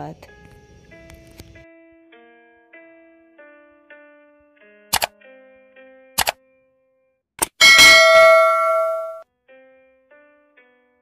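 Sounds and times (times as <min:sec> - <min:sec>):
bright bell ding: 0:07.6 - 0:09.2.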